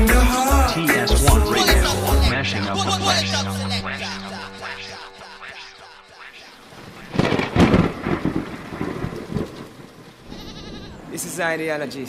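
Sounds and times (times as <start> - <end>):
rain hiss: 6.4 - 10.4
rumbling thunder crash: 6.8 - 10.3.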